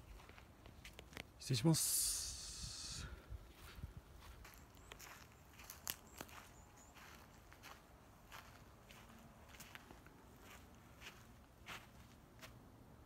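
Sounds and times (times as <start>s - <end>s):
footsteps on dry grass: 0.0s - 1.3s, 3.2s - 12.7s.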